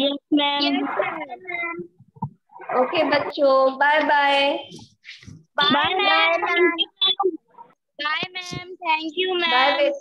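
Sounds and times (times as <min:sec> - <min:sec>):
woman speaking: 0:05.6 - 0:07.2
children's voices answering: 0:05.6 - 0:10.0.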